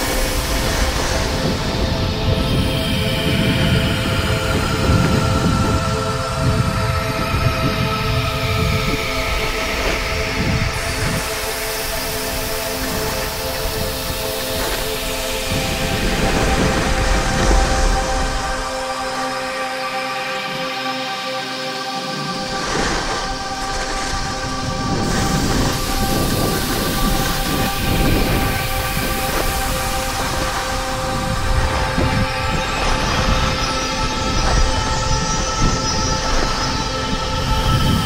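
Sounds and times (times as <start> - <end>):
wind buffeting camera: 0.0 - 18.6, 22.5 - 38.0.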